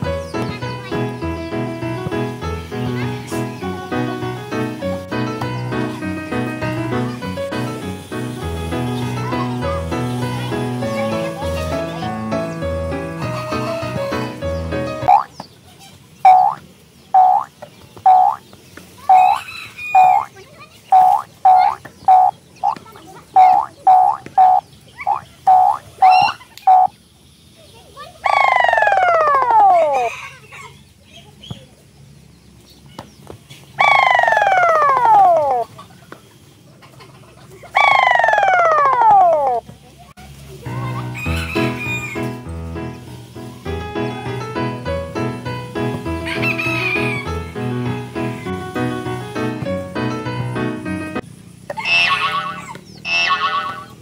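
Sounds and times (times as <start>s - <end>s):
background music: 0.0s - 15.2s, 41.4s - 51.2s
short pitched blips: 16.3s - 16.6s, 17.2s - 17.5s, 18.1s - 18.4s, 19.1s - 19.4s, 20.0s - 20.3s, 21.0s - 22.8s, 23.4s - 26.9s.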